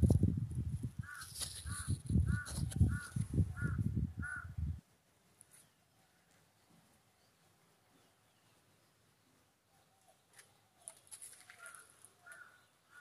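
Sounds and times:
low rumbling microphone noise: 0.0 - 4.8
crow cawing: 1.0 - 4.5, 11.6 - 13.0.

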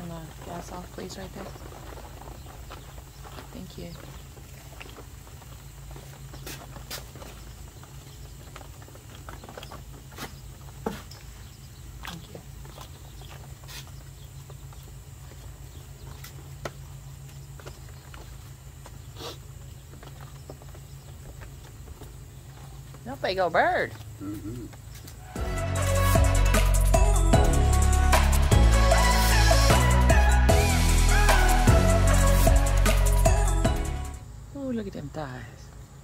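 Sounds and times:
small ticks and crackles: 0.0 - 23.1.

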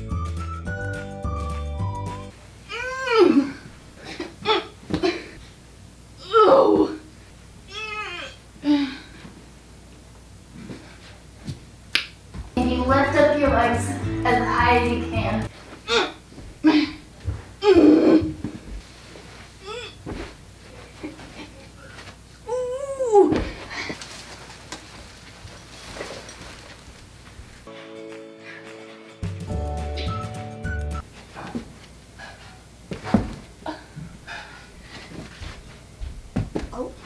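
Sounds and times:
background music sustained tones: 0.0 - 2.4, 12.6 - 15.5, 27.7 - 31.0
girl crying out: 2.7 - 3.6, 7.7 - 9.0, 22.5 - 23.4.

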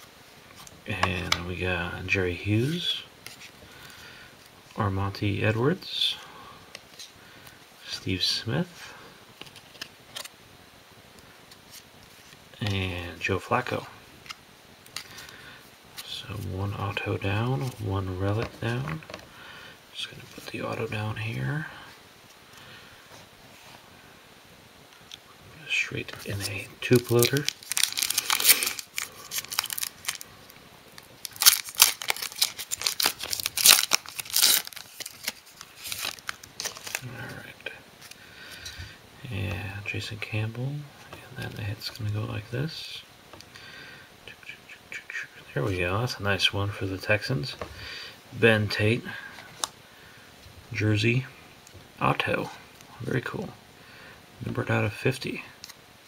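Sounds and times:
foil wrapper tearing and crinkling: 26.4 - 30.2, 31.0 - 37.1.

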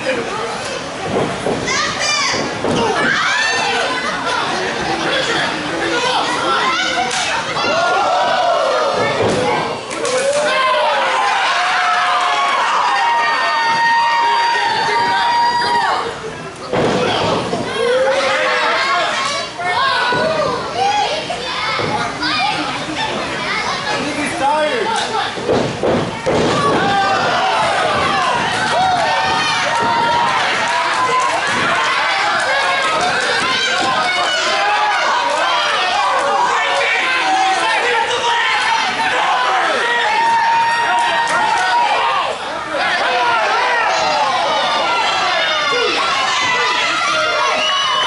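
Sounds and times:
crowd of children shouting: 1.7 - 22.6, 26.1 - 48.0.

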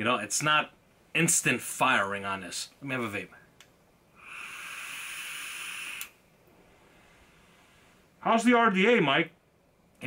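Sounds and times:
air hissing through atomiser: 4.2 - 8.0.

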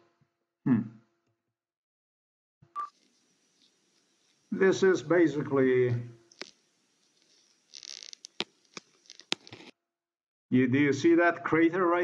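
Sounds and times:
faint hiss: 2.8 - 9.7
sharp clicks: 6.3 - 6.6, 7.2 - 9.7.

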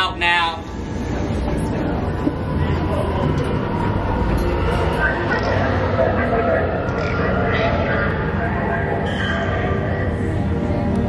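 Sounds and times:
low machine-like drone: 0.0 - 11.0.

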